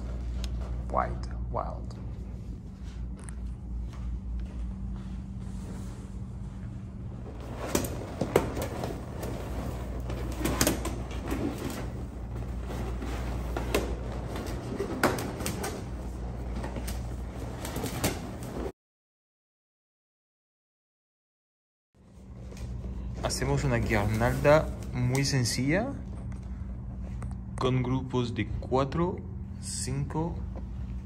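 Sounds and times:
steady low hum: 0:00.0 - 0:18.7, 0:22.0 - 0:31.0.

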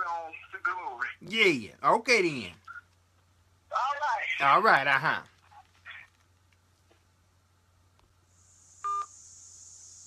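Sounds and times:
faint high hiss: 0:07.7 - 0:10.0
electronic phone beep: 0:08.8 - 0:09.2.

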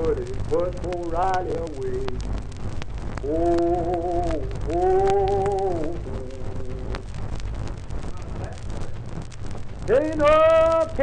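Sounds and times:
man singing: 0:00.0 - 0:02.3, 0:03.2 - 0:07.0
record surface noise: 0:00.0 - 0:11.0.

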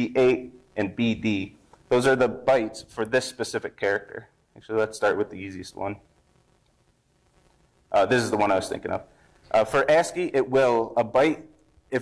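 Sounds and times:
man saying uh: 0:08.0 - 0:11.4.

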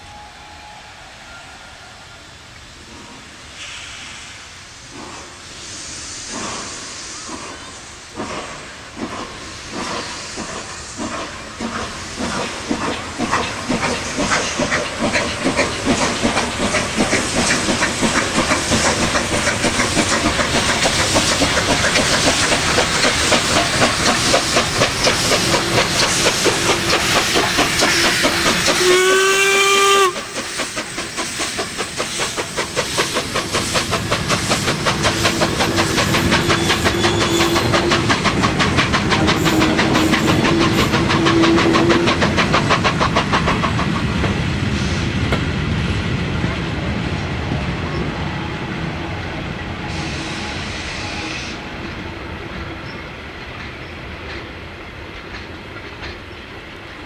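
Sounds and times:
steam whistle blast: 0:00.0 - 0:02.2, 0:27.9 - 0:30.4, 0:36.4 - 0:37.7
hiss of escaping steam: 0:00.0 - 0:46.0, 0:48.0 - 0:53.1
steam locomotive exhaust beats: 0:02.8 - 0:57.0.

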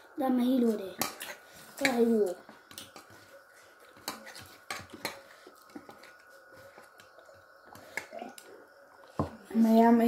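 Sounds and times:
dishes and cutlery clinking: 0:03.9 - 0:07.1.

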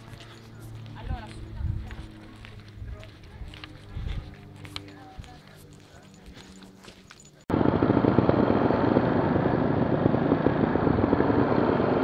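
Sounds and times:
motorcycle engines off-road: 0:00.0 - 0:12.0.

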